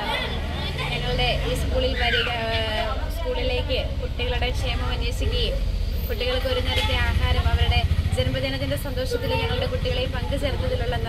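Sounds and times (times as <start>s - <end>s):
woman speaking: 0.9s - 11.0s.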